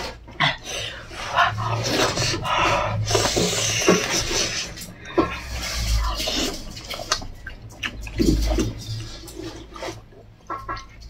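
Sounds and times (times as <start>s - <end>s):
wet chewing and sucking: 0.0s - 11.0s
smacking mouth clicks: 6.6s - 9.5s.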